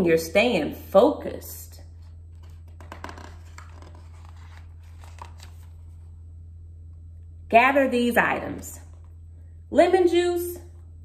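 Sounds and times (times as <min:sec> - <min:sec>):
steady low hum: 0:00.0 - 0:11.0
book pages turning: 0:01.9 - 0:06.2.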